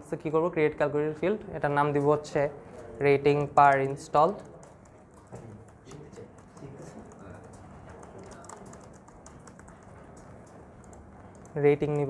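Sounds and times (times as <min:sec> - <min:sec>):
keyboard typing: 0:02.7 - 0:12.0.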